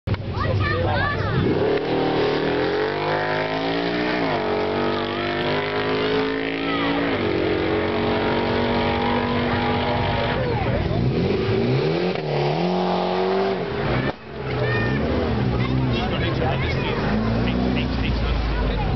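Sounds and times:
car engine accelerating hard: 1.1s - 18.9s.

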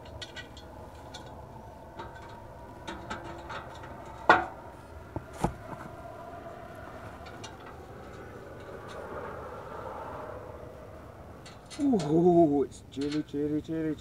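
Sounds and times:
faint steady hum: 0.0s - 14.0s.

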